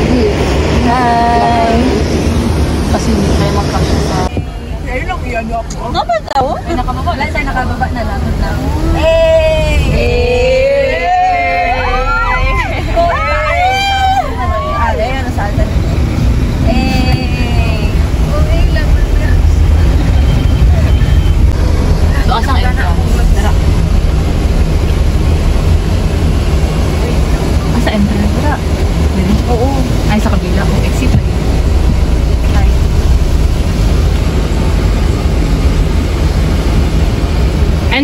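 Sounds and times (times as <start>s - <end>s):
car cabin road rumble: 0.0s - 38.0s.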